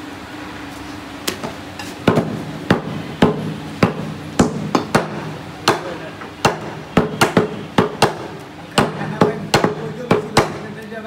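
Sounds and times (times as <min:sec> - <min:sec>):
steady low hum: 0:00.0 - 0:11.0
cleavers chopping on wooden blocks: 0:02.0 - 0:10.8.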